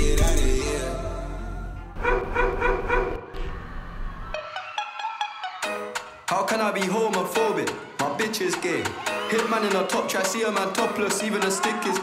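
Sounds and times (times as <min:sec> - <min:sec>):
dance music: 0:00.0 - 0:01.8, 0:04.1 - 0:12.0
dog barks: 0:02.0 - 0:03.3.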